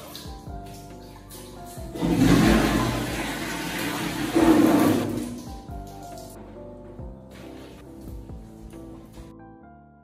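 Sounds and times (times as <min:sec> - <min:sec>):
toilet flushing: 0:01.8 - 0:05.9.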